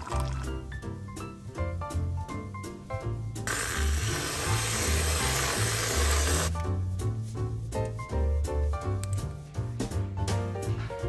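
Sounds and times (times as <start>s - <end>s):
background music: 0.0s - 11.0s
aerosol can spraying hiss: 3.5s - 6.6s.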